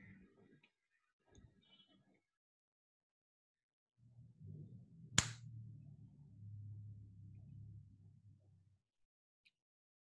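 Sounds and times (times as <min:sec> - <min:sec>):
low hum: 0:04.0 - 0:08.8.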